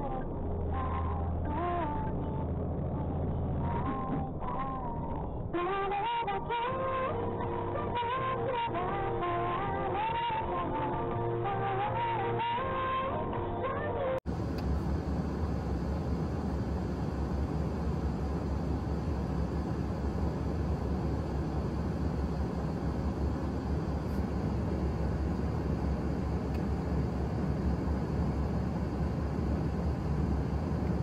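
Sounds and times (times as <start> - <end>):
outdoor noise with low rumble: 0.0 - 31.0
background music: 4.6 - 14.2.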